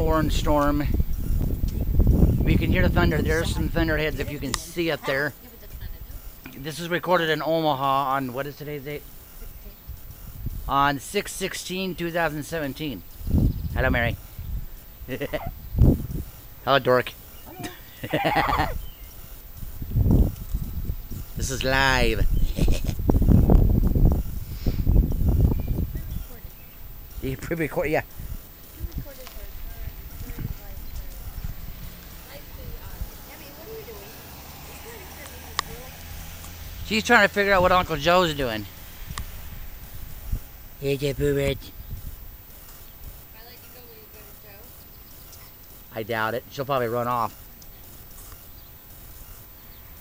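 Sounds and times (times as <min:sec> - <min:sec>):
wind buffeting microphone: 0:00.0 - 0:06.8, 0:09.0 - 0:45.8.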